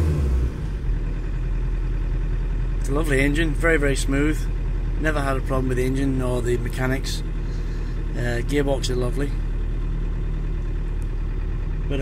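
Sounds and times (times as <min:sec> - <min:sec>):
minibus engine idling: 0:00.2 - 0:12.0.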